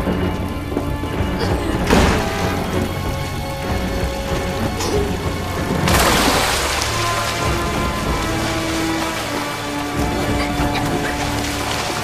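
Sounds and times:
thunder cracks: 0.0 - 9.0
low sustained musical drone: 0.0 - 12.0
steady rain: 0.0 - 12.0.

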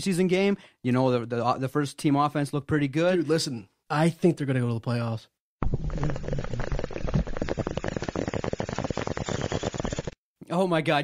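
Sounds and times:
dense crackling noise: 5.6 - 10.2.

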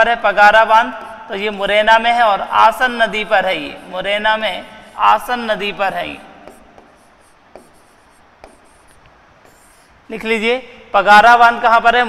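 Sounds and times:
pen scratching on screen: 0.6 - 1.7, 2.7 - 10.1
light pen taps: 6.5 - 9.6.

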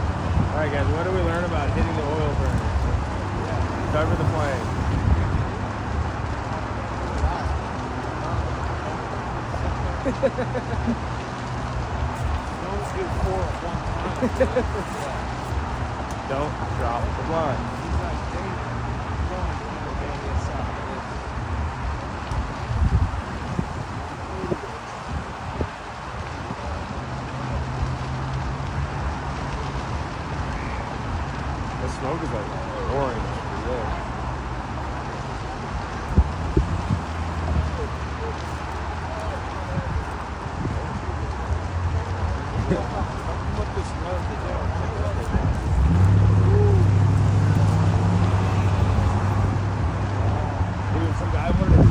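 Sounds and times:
noisy outdoor background: 0.0 - 51.9
wind rumbling on microphone: 0.0 - 51.9.

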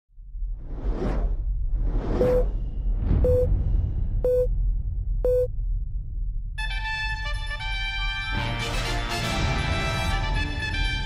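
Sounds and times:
low rumble: 0.1 - 8.1
whooshes: 0.4 - 5.2
short beeps with clicks: 3.2 - 3.5, 4.2 - 4.5, 5.3 - 5.5.

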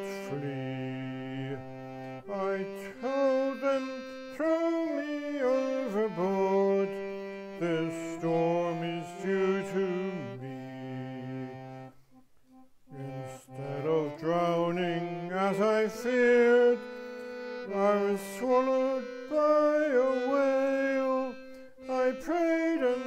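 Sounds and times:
person singing folk song: 0.0 - 12.0, 12.9 - 23.0
instrumental accompaniment: 0.0 - 23.0.

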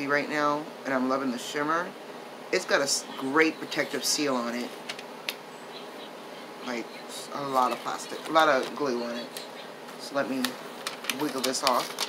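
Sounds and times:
buzzing room hum: 0.0 - 12.0.

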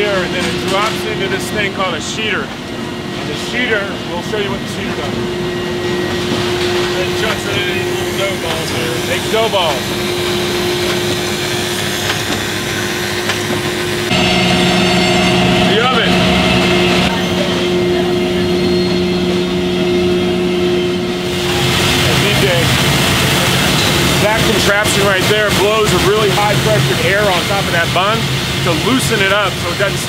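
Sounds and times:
production line machinery hum: 0.0 - 30.0.

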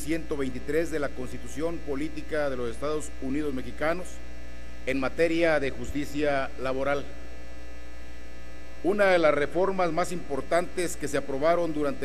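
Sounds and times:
man talking: 0.0 - 4.2, 4.9 - 7.1, 8.8 - 12.0
electrical mains hum: 0.0 - 12.0.

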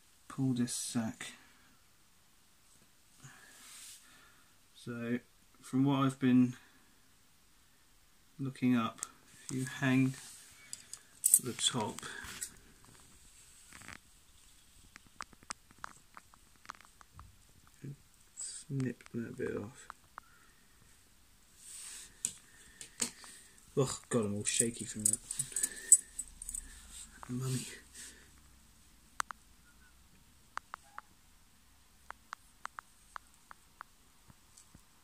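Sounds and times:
soft rustle: 2.6 - 4.3, 9.1 - 28.4.

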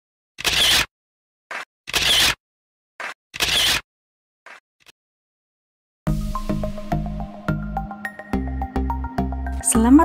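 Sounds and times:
camera shutter sound effect: 0.4 - 0.9, 1.5 - 2.4, 3.0 - 3.8.

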